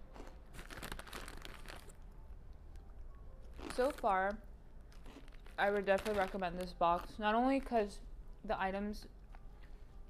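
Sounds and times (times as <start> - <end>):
plastic snack packet crinkling: 0.1 - 2.0, 3.5 - 4.3, 4.9 - 7.7.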